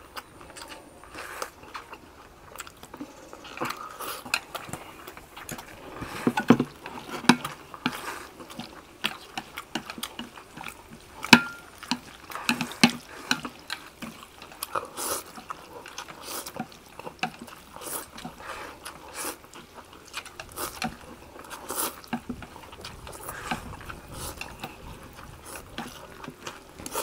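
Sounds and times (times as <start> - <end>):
noodles being slurped and chewed: 0.0 - 27.0
wet sucking and smacking: 0.0 - 27.0.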